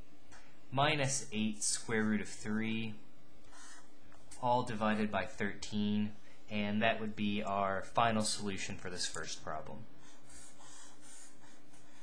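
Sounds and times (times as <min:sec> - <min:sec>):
marker scratching on paper: 0:03.5 - 0:04.3, 0:10.0 - 0:12.0.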